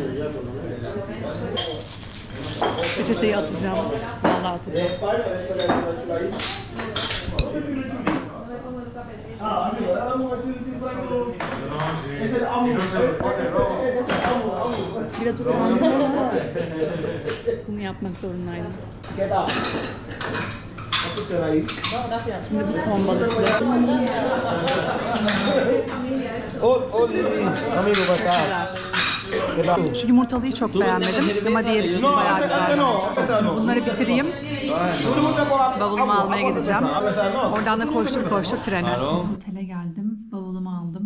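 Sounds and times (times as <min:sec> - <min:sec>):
background chatter: 0:00.0 - 0:41.0
customers talking: 0:00.0 - 0:41.0
dishes and cutlery clinking: 0:01.5 - 0:08.2, 0:19.3 - 0:26.1, 0:27.4 - 0:29.9, 0:30.8 - 0:32.9.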